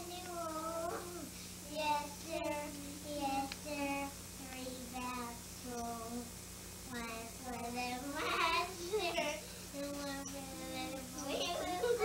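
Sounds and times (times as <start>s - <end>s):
girl singing: 0.0s - 6.3s, 6.9s - 12.0s.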